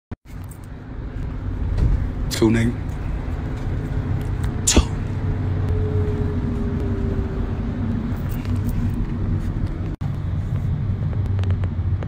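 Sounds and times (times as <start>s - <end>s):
car rumble inside cabin: 0.3s - 12.0s.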